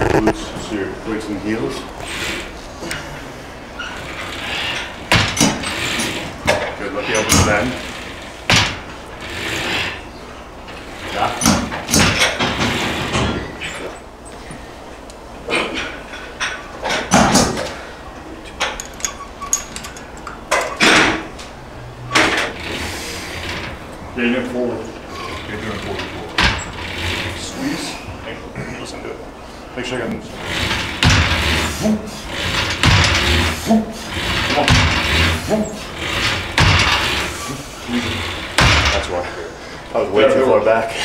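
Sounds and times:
weight stack metal clanks: 3.9 - 9.7, 30.4 - 39.3
indistinct voices: 21.6 - 41.0.

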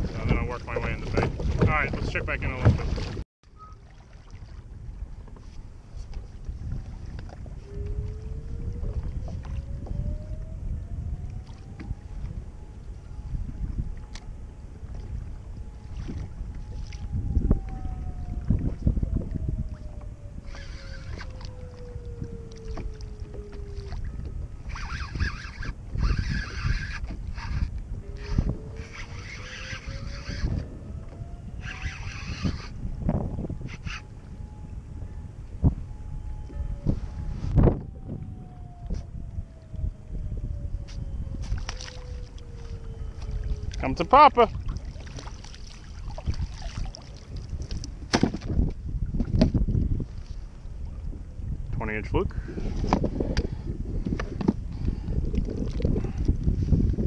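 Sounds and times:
wind buffeting microphone: 0.0 - 57.0
faint whistle-like sliding tone: 3.5 - 4.0, 7.6 - 10.5, 11.1 - 43.8.

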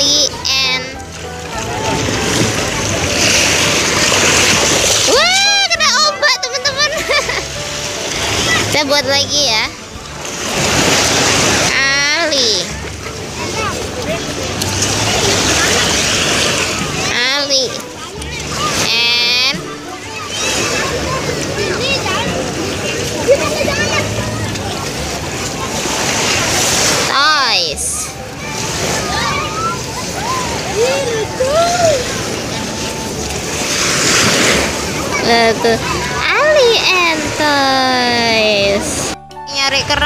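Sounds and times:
surf noise: 0.0 - 40.0
surf washing over sand: 0.2 - 9.0, 9.6 - 19.0.

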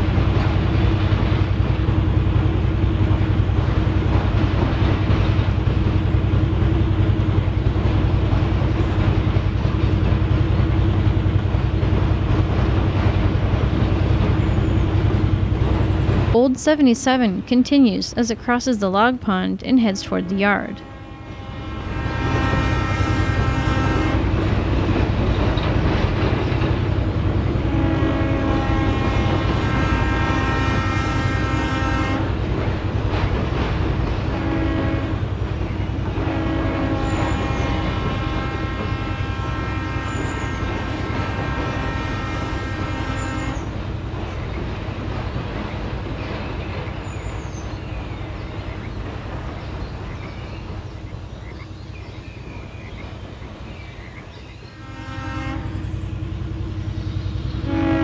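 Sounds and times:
engine rumble: 0.0 - 58.0
model train horn blasts: 19.8 - 24.5, 27.4 - 32.4, 34.0 - 35.3, 36.0 - 43.7, 54.7 - 56.2, 57.4 - 58.0.

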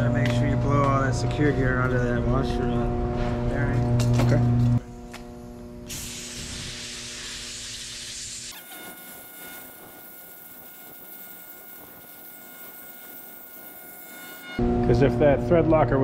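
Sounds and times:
compressed air hiss: 5.9 - 8.6.

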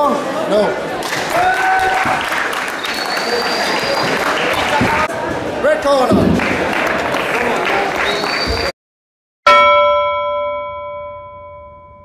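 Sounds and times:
bell ringing: 9.5 - 12.0.

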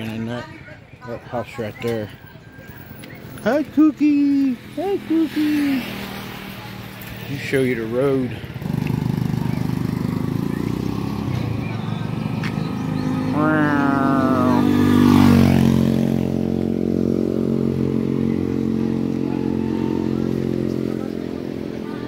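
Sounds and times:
small motorcycle engine: 7.3 - 22.0.

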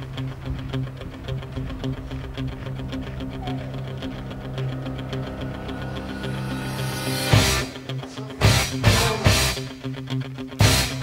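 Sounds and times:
music with steady beat: 0.0 - 11.0.

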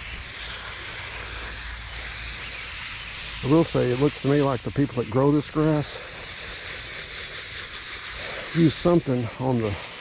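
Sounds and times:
hose water spraying: 0.0 - 10.0.

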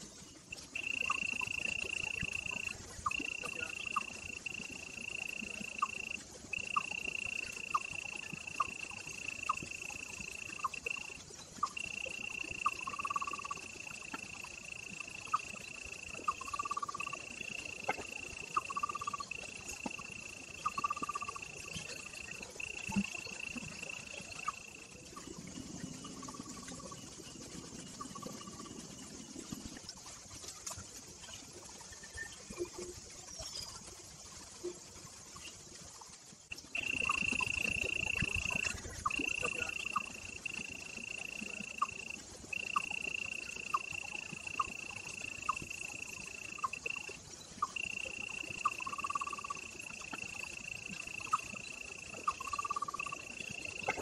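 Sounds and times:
insect trilling: 0.0 - 54.0.

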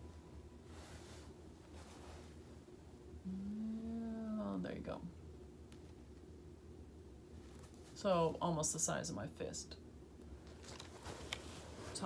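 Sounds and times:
long steady voiced sound: 0.0 - 5.3
low steady hum: 0.0 - 12.0.

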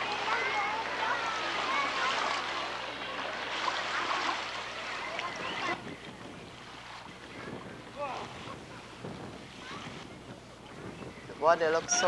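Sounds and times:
choppy lake water: 0.0 - 12.0
faint distant voices: 0.0 - 12.0
wind on microphone: 5.2 - 12.0.

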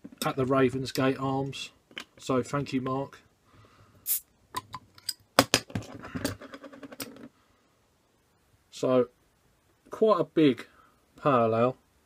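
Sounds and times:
fizzing hiss: 4.0 - 4.3.

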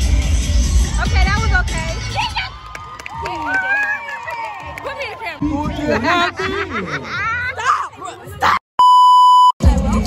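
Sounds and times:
music with heavy beat: 0.0 - 2.0
girls' excited voices: 7.2 - 8.6
censor bleep: 8.8 - 9.6.

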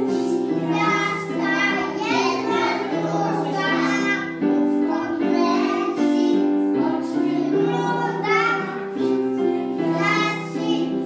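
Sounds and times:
children singing: 0.0 - 11.0
piano accompaniment: 0.0 - 11.0.

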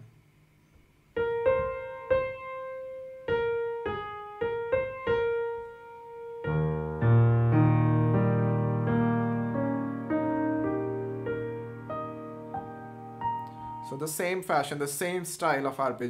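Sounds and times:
piano melody: 1.1 - 14.4
low piano arpeggio notes: 1.2 - 14.1.

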